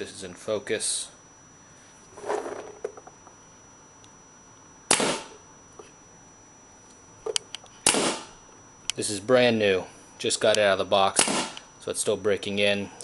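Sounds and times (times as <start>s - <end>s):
paintball marker shots: 4.9s - 5.4s, 7.8s - 8.3s, 11.2s - 11.6s.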